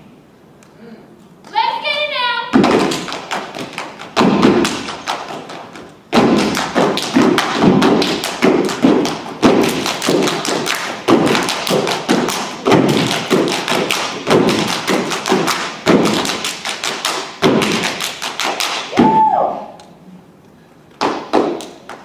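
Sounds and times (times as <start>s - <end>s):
stomps on stage floor: 2.6s - 5.0s, 6.1s - 16.4s
hand claps and body slaps: 2.6s - 19.2s, 20.9s - 22.0s.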